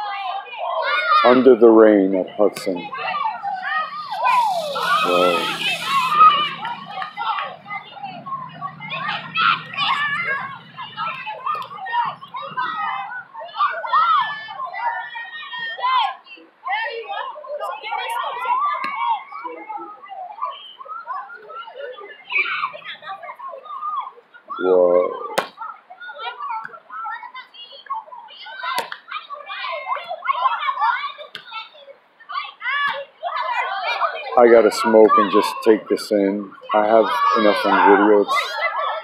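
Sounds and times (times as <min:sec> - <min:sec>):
children calling and chattering: 0:00.0 - 0:39.0
brief hiss: 0:04.0 - 0:06.8.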